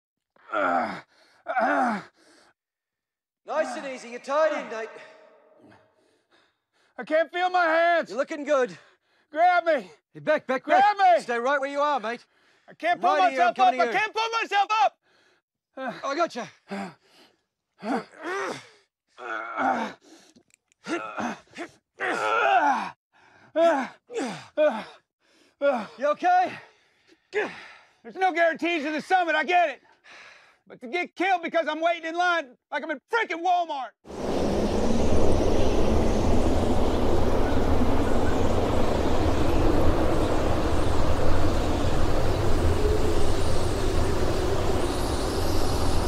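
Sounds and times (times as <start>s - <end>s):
man breathing and gasping: 0.4s - 2.6s, 15.0s - 18.9s, 23.1s - 28.1s, 29.9s - 30.7s
men grunting with strain: 0.5s - 2.1s, 19.2s - 20.0s, 20.8s - 22.9s
man speaking: 3.5s - 5.0s, 12.8s - 14.6s.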